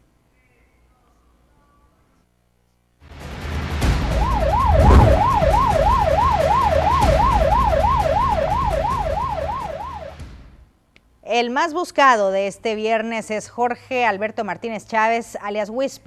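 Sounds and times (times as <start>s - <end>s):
low rumbling noise: 4.0s - 6.3s
siren yelping: 4.2s - 10.2s.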